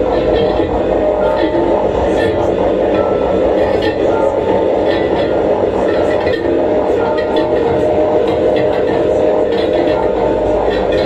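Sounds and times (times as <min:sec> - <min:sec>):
electronic noise drone: 0:00.0 - 0:11.0
humming tones: 0:00.0 - 0:11.0.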